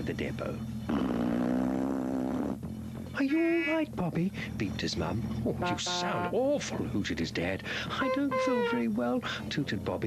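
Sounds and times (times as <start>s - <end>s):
held low brassy tone: 5.4s - 7.0s, 7.9s - 9.0s.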